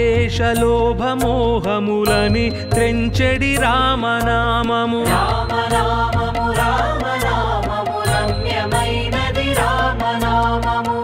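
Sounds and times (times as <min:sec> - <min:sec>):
devotional song melody: 0:00.0 - 0:11.0
percussion strikes: 0:00.0 - 0:11.0.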